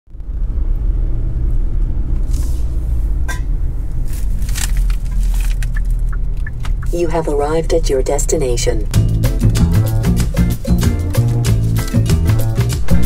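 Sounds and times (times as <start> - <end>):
road rumble inside car: 0.1 - 13.0.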